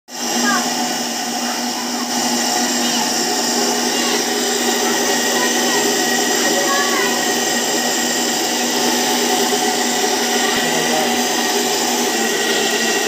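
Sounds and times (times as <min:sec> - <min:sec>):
mixer grinder motor whirring: 0:00.1 - 0:13.0.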